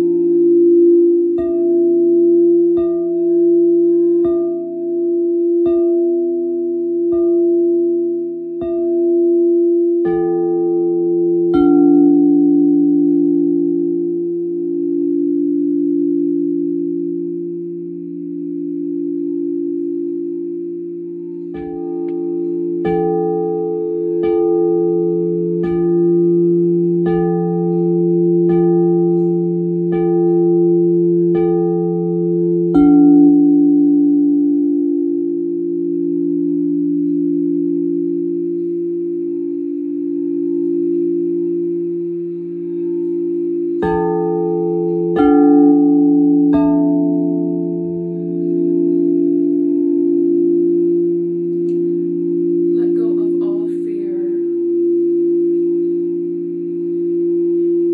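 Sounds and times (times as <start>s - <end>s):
bell-like struck notes: 0.0s - 57.9s
singing bowls drone: 0.0s - 57.9s.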